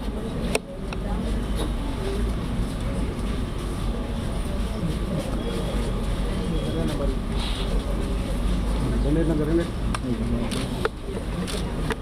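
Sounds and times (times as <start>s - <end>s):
crowd murmur: 0.0s - 12.0s.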